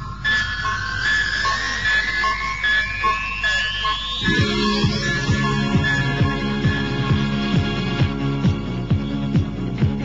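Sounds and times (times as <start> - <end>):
short electronic beep: 0.0 - 6.9
rising synth whistle: 0.0 - 7.4.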